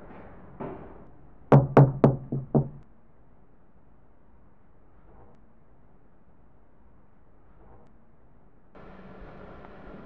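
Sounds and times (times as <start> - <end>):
knuckles knocking on door: 1.5 - 2.8.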